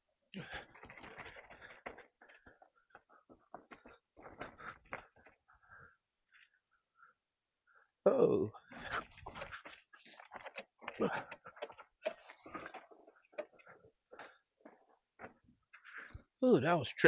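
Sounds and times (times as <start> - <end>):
mountain bike rattling over dirt: 8.8 - 16.2.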